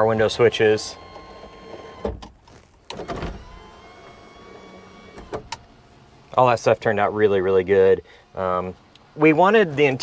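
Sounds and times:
power window motor whine: 0.2 - 2.3, 2.9 - 6.2
window motor thunk: 1.0 - 2.3, 2.9 - 5.7.

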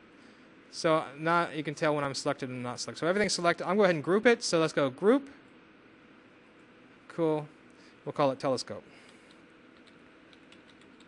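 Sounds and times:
computer keyboard typing: 9.2 - 11.0.

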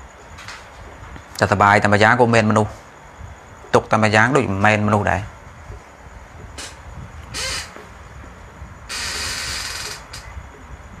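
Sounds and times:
harsh bird calls: 6.6 - 7.9.

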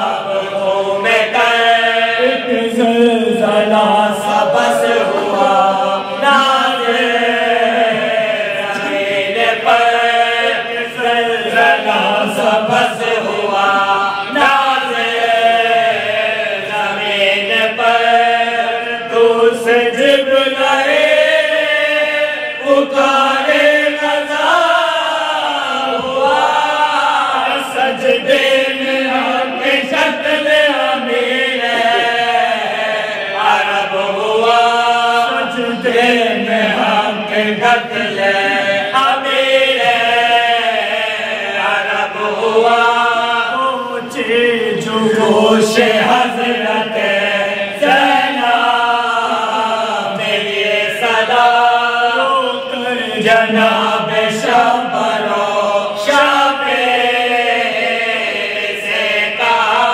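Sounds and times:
men chanting in unison: 0.0 - 59.9.

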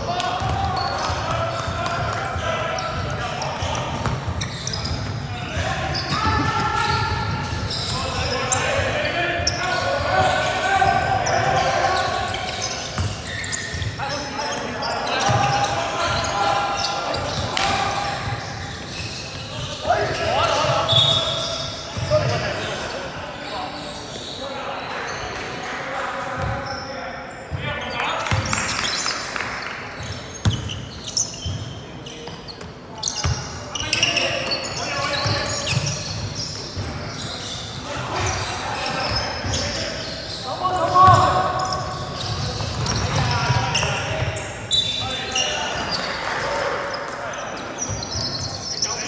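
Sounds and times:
players calling out: 0.0 - 25.3, 30.0 - 49.0
basketball bouncing on court: 0.4 - 5.0, 12.9 - 13.2, 30.0 - 30.8, 41.1 - 44.4.

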